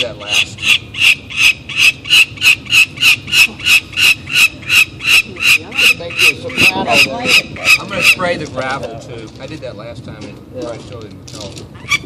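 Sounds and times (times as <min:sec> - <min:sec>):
falcon calling: 0:00.0 - 0:08.4.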